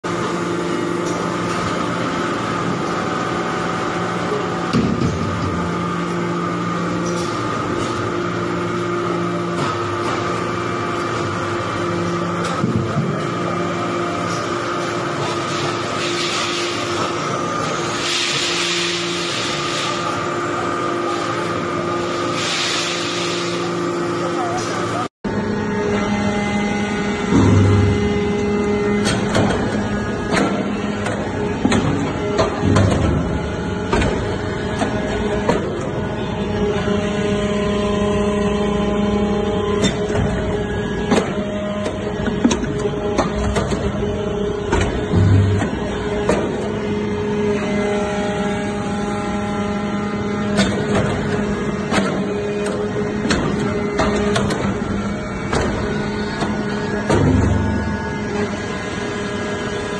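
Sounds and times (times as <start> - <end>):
hydraulic press humming: 0.0 - 59.9.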